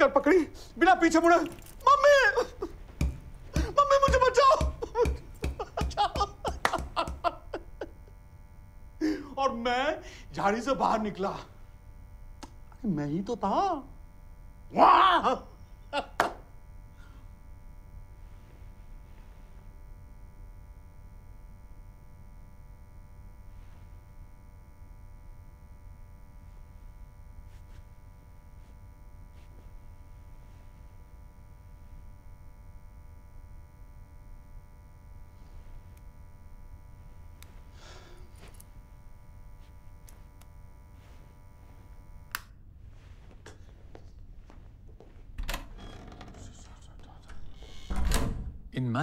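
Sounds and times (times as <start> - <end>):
low electrical hum: 0.0 - 49.0
low room rumble: 0.0 - 49.0
soft brushing: 18.2 - 19.7, 26.4 - 31.0, 39.5 - 42.2, 42.8 - 45.3.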